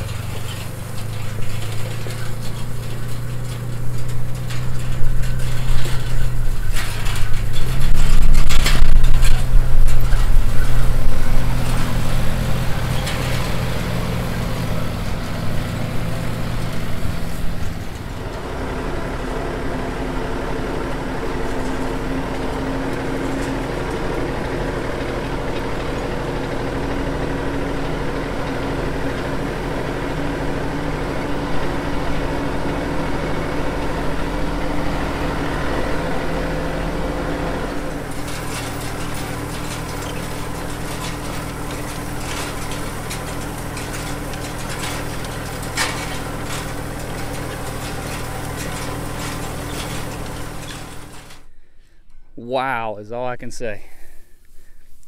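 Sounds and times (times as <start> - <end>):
light rapid clatter: 0.0 - 18.5, 37.5 - 51.5
tractor diesel engine running: 0.0 - 55.0.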